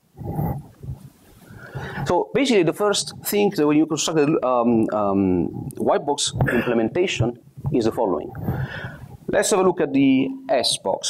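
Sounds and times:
breathy noise: 0:00.2 - 0:02.2, 0:08.3 - 0:09.2
man clearing his throat: 0:06.4 - 0:06.8.

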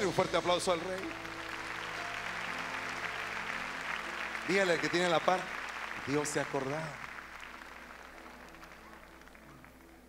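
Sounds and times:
congregation applauding: 0:00.0 - 0:10.0.

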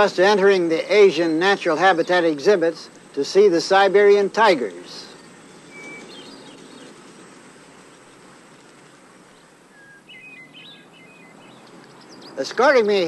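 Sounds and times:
steady hiss: 0:00.0 - 0:13.0
bird chirps: 0:04.9 - 0:07.1, 0:07.8 - 0:13.0.

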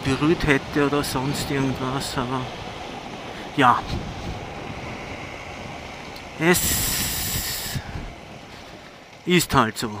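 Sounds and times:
wind noise: 0:00.0 - 0:08.9
burst of hiss: 0:06.6 - 0:07.9.

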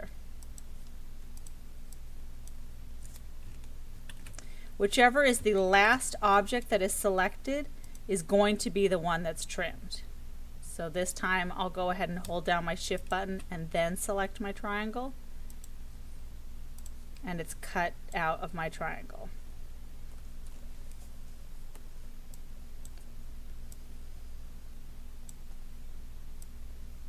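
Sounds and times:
low steady hum: 0:00.0 - 0:27.0
computer mouse clicks: 0:00.4 - 0:04.5, 0:15.4 - 0:15.8, 0:16.8 - 0:17.2, 0:20.2 - 0:23.9
person speaking: 0:04.8 - 0:10.1, 0:10.7 - 0:15.1, 0:17.2 - 0:19.4.

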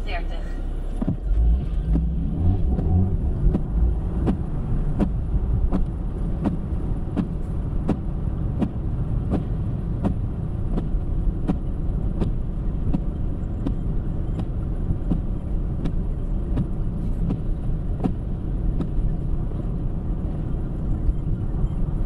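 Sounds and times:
car road noise rumble: 0:00.0 - 0:22.0
windscreen wipers ticking: 0:00.1 - 0:22.0.

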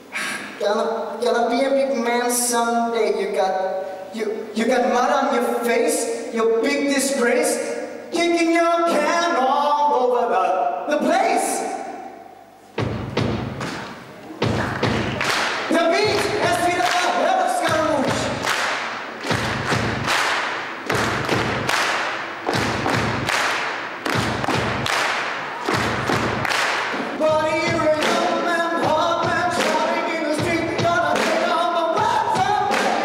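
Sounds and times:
steady thumping beat: 0:12.8 - 0:33.0.

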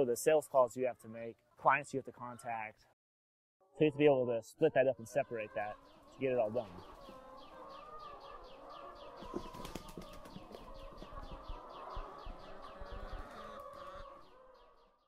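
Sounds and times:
hens clucking: 0:03.6 - 0:14.9.

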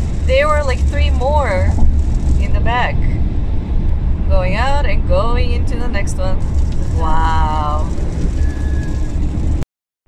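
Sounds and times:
car cabin road and engine rumble: 0:00.0 - 0:09.6.

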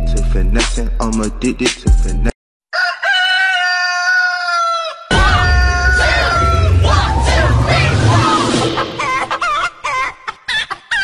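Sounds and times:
backing track with heavy bass beat: 0:00.0 - 0:02.3, 0:05.1 - 0:09.5.

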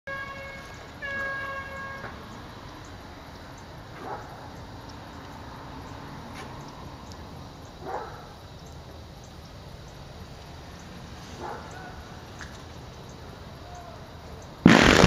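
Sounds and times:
distant calls: 0:00.1 - 0:15.0
outdoor background noise: 0:00.1 - 0:15.0.

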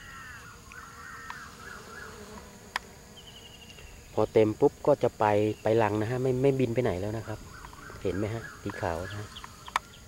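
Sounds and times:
bees buzzing: 0:00.0 - 0:10.0.

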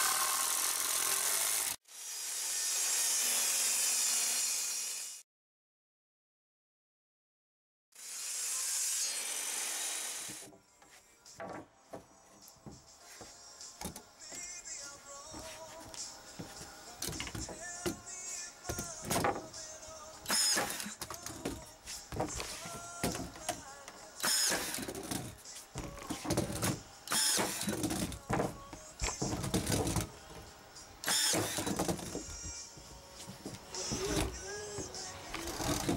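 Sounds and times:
table saw cutting wood: 0:00.0 - 0:05.2, 0:07.9 - 0:10.5, 0:20.3 - 0:21.0, 0:24.2 - 0:25.0, 0:26.2 - 0:28.4, 0:31.0 - 0:32.5
cordless drill driving screws: 0:20.3 - 0:21.0, 0:24.2 - 0:25.2, 0:26.6 - 0:28.1, 0:31.0 - 0:32.1.

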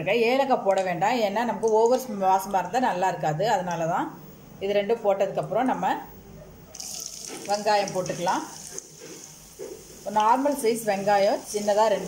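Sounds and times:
onions sizzling in hot oil: 0:06.8 - 0:12.0.

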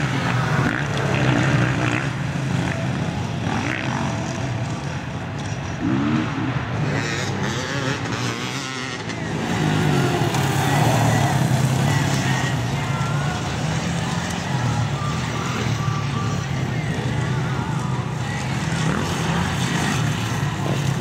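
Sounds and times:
motorcycle engines revving: 0:00.0 - 0:21.0.

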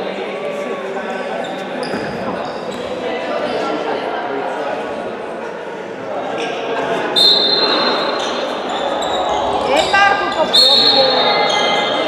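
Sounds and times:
high steady squeals: 0:07.2 - 0:12.0.

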